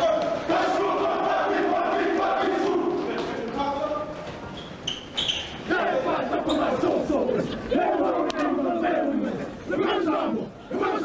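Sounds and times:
team chanting in loud shouts: 0.0s - 3.6s, 5.7s - 11.0s.

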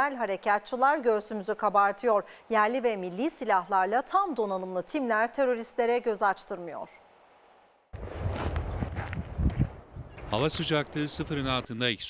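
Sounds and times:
footsteps crunching in snow: 8.0s - 9.7s.

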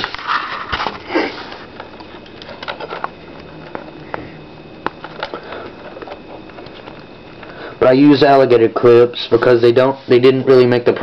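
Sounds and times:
clicks and rustles of wires: 0.0s - 4.2s, 4.8s - 7.5s.

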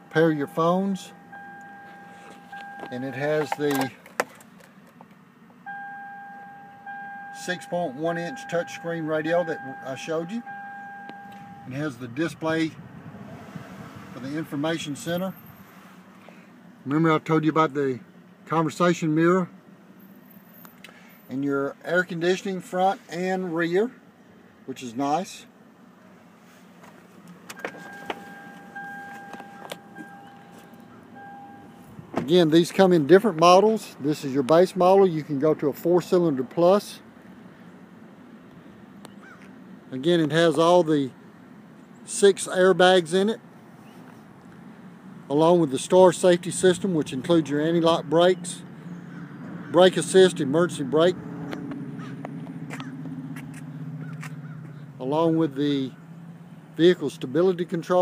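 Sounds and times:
steady car beep tone: 0.0s - 3.9s, 5.6s - 12.4s, 27.5s - 32.1s.

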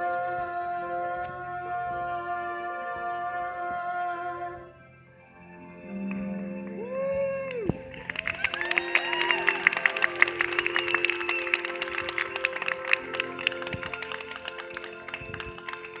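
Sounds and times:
backing music held notes: 0.0s - 16.0s
audience clapping and cheering: 7.5s - 16.0s.

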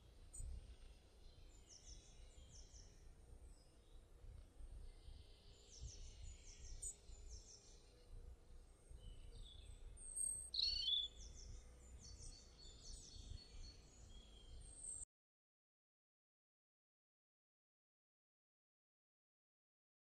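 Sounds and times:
faint birds chirping: 0.0s - 15.1s.

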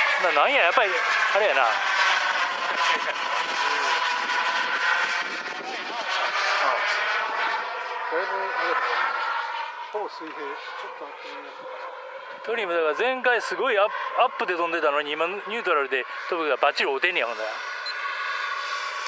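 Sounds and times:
model jet high whine: 0.0s - 19.0s.

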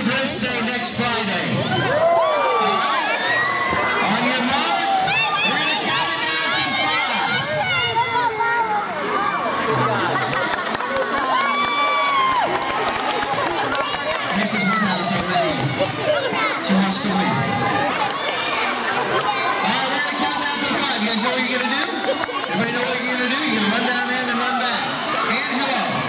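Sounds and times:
children shouting and cheering: 1.7s - 26.0s.

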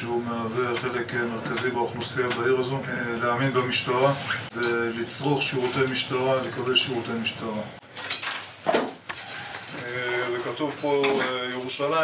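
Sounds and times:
people talking: 0.0s - 7.8s, 9.7s - 12.0s.

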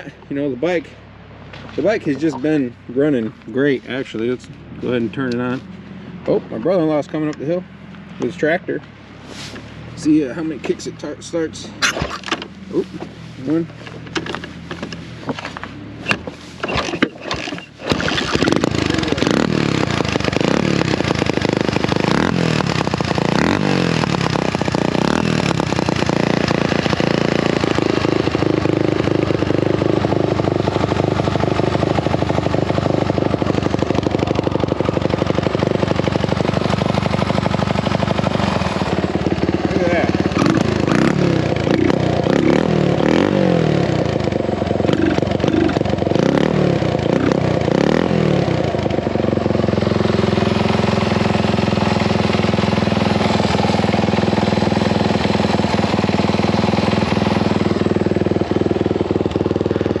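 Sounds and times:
motorcycle engine idling and revving: 0.0s - 60.0s.

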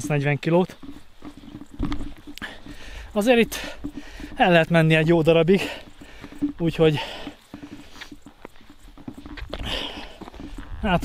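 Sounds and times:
footsteps on grassy trail: 0.0s - 11.0s
man breathing: 2.2s - 4.4s, 5.6s - 8.6s, 9.5s - 10.8s.

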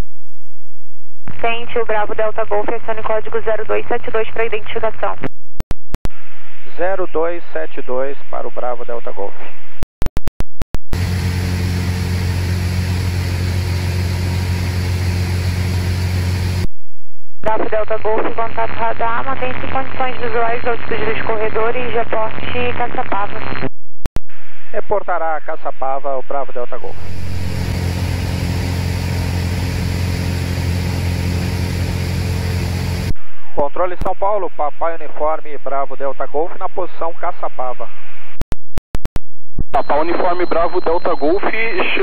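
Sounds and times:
light aircraft engine drone: 11.0s - 16.6s, 26.9s - 33.1s.

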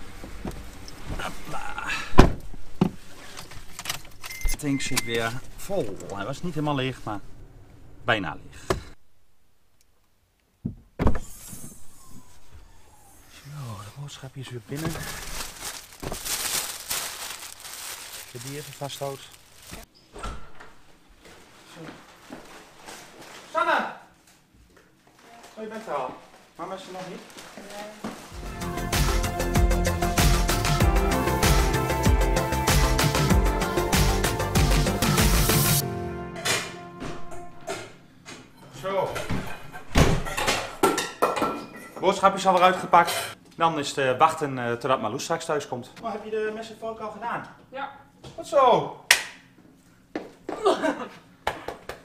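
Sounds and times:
plastic bags and cellophane rustling: 13.6s - 19.9s, 21.2s - 28.4s.

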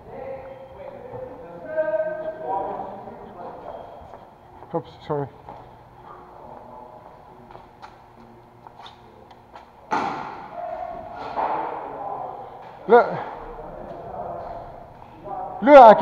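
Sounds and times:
loud echoing thump: 9.9s - 10.5s.

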